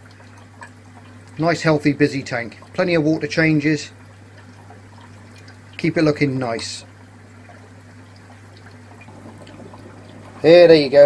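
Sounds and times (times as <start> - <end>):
water trickling from aquarium filter: 0.0 - 11.0
low hum: 8.8 - 11.0.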